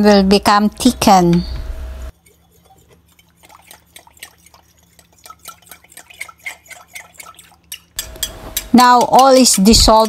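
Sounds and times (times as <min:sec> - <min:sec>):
liquid sloshing: 0:02.1 - 0:08.0.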